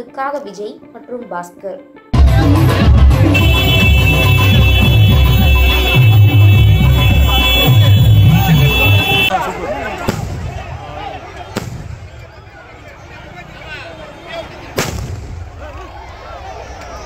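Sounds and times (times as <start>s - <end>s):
crowd voices: 2.2s - 17.0s
fireworks bangs: 10.0s - 10.9s, 11.5s - 12.4s, 14.7s - 15.6s.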